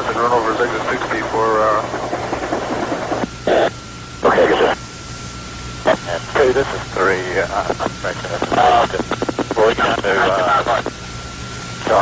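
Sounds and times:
radio hiss and static: 0.0s - 12.0s
short burst of static: 2.7s - 4.8s.

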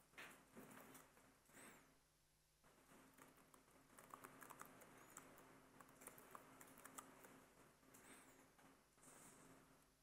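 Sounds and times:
typing on computer keyboard: 3.1s - 7.4s.

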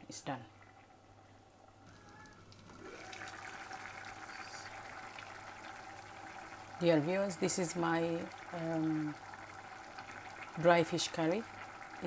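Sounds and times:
pot of curry bubbling: 2.6s - 12.0s.

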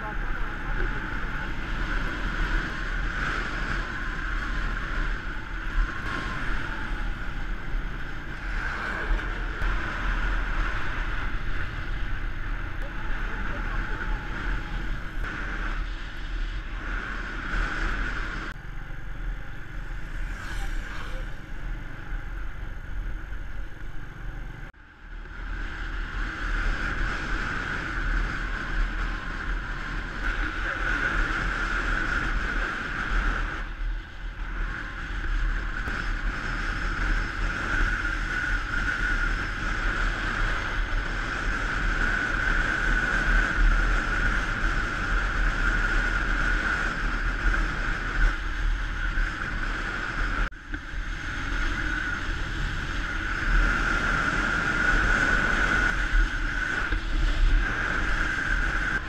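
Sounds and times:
motorbike engine cruising: 0.0s - 59.0s
wind noise on microphone: 0.0s - 59.0s.

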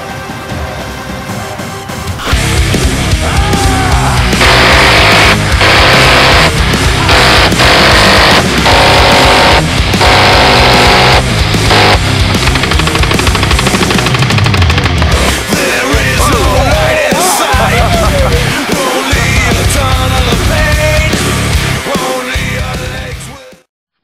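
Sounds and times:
loud music: 0.0s - 23.6s
minigun bursts: 4.2s - 14.5s
lighter rapid gunfire: 4.3s - 14.6s.

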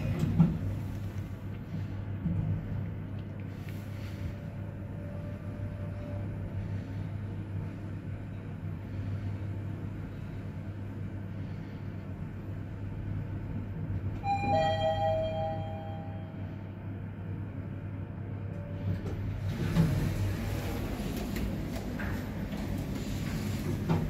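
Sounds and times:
elevator car humming: 0.0s - 24.0s
two-note elevator chime: 14.2s - 16.5s.

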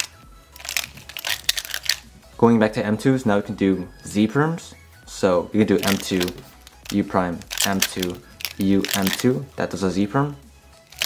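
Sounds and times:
plastic puzzle clicking: 0.0s - 2.0s, 5.8s - 9.3s.

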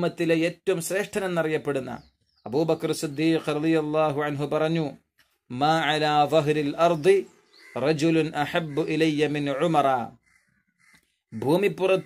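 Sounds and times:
man lecturing: 0.0s - 10.2s, 11.3s - 12.0s.

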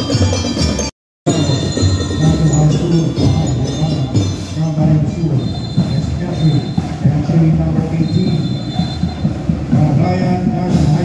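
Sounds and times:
high bell-like tones: 0.0s - 6.9s
parade band music: 0.0s - 11.0s.

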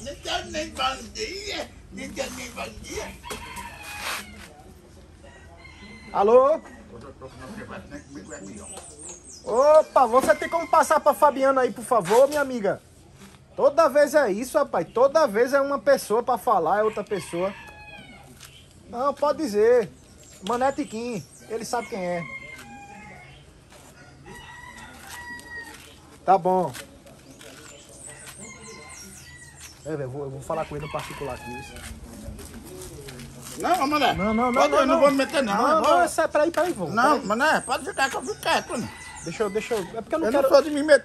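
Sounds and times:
rooster crowing: 3.1s - 4.5s, 5.2s - 7.0s, 16.7s - 18.3s, 21.6s - 25.9s, 28.1s - 29.7s, 30.6s - 31.9s, 33.8s - 35.8s, 38.4s - 40.3s
rooster crowing faintly: 3.2s - 7.2s, 21.6s - 26.0s.

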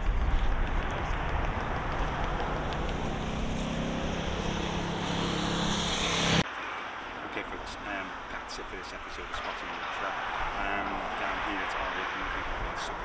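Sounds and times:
jet engines running: 0.0s - 6.4s.

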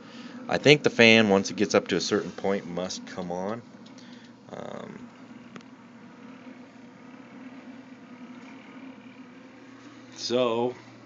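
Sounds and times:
cooling fan running: 0.0s - 11.0s
low electrical hum: 0.0s - 11.0s.

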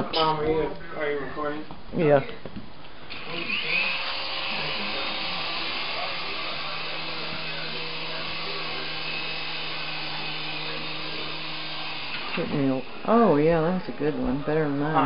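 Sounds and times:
toy helicopter rotors whirring: 3.1s - 13.1s.

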